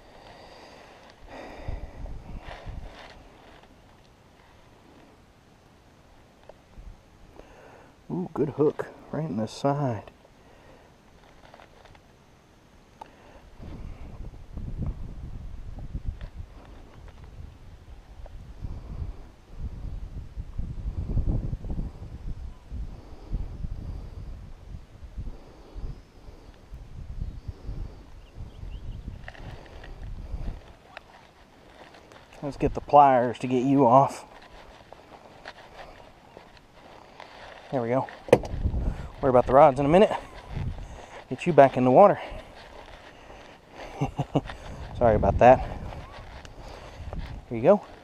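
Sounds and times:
wind buffeting microphone: 0.0s - 3.7s, 13.5s - 48.0s.

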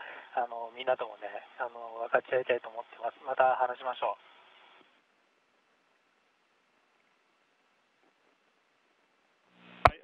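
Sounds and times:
faint line hiss: 0.0s - 10.0s.

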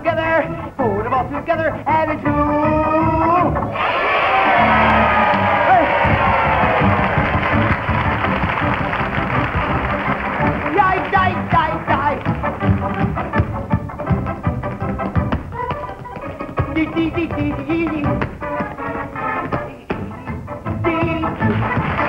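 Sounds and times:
lively band music: 0.0s - 22.0s
children cheering and screaming: 3.8s - 7.2s.

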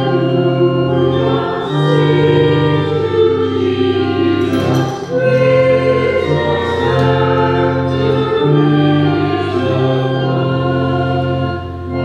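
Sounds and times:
church organ: 0.0s - 12.0s
voices singing a hymn: 0.0s - 12.0s.

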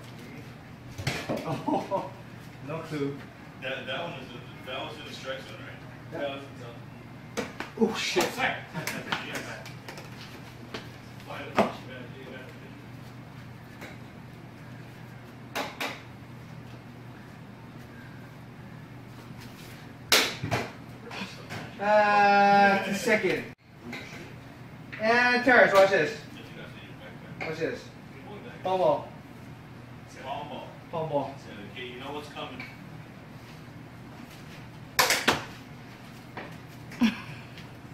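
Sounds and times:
steady low hum: 0.0s - 37.9s.

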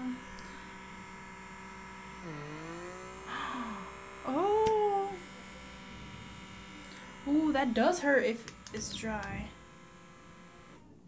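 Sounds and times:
small vacuum motor buzzing: 0.0s - 11.0s.

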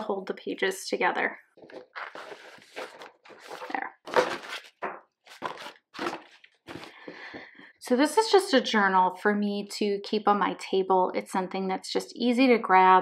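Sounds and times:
paper and ribbon rustling: 1.6s - 7.3s.

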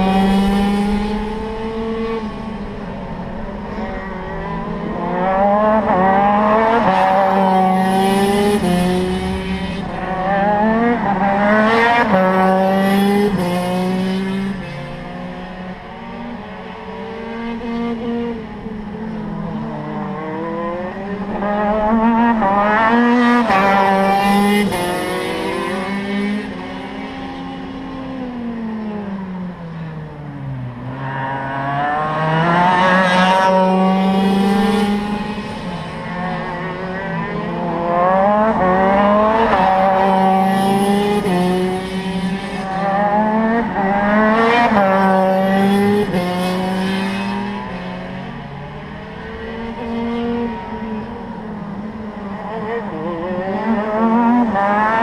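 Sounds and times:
kart two-stroke engine revving: 4.3s - 15.3s.

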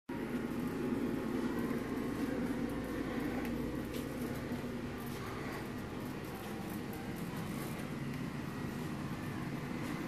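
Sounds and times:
low room hum: 0.1s - 10.0s.

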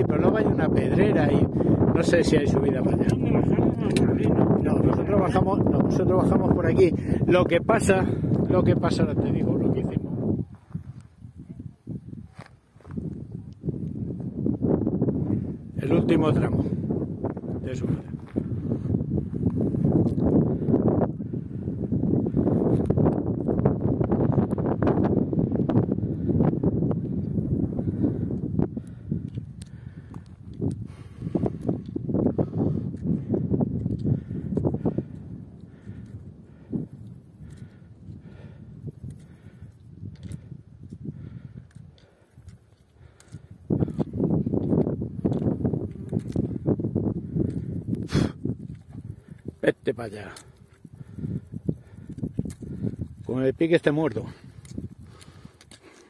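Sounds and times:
wind rumbling on microphone: 0.0s - 56.0s
footsteps on stony path: 8.2s - 14.7s, 16.5s - 21.0s, 26.9s - 56.0s
walking poles clicking: 40.1s - 46.5s, 54.4s - 56.0s.

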